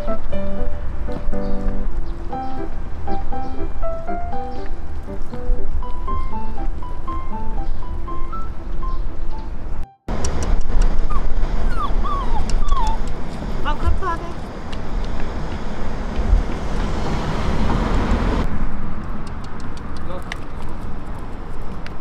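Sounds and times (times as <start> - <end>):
light background music: 0.0 - 10.0
wind rumble on microphone: 10.1 - 22.0
puppy whining: 10.7 - 13.2.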